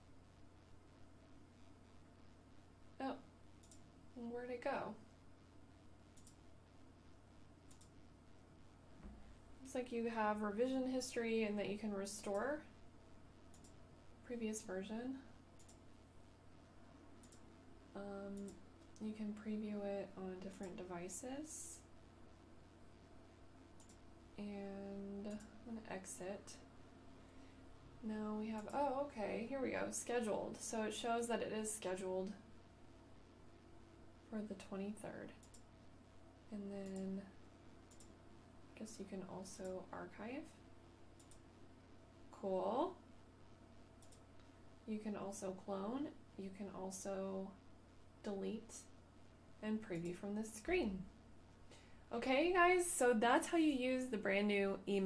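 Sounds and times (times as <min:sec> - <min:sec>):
computer mouse click: 0:03.6 - 0:03.9, 0:06.2 - 0:06.4, 0:07.6 - 0:08.0, 0:13.5 - 0:13.8, 0:15.6 - 0:15.8, 0:17.2 - 0:17.5, 0:18.3 - 0:19.0, 0:20.4 - 0:20.8, 0:23.8 - 0:24.0, 0:25.3 - 0:25.5, 0:35.4 - 0:35.7, 0:36.8 - 0:37.1, 0:37.9 - 0:38.2, 0:41.2 - 0:41.4, 0:44.0 - 0:44.5.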